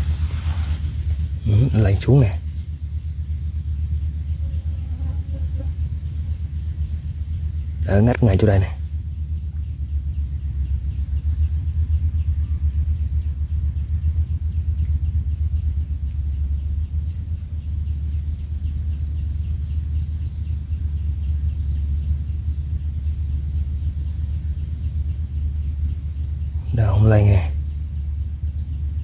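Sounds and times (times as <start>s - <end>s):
low rumble: 0.0s - 29.0s.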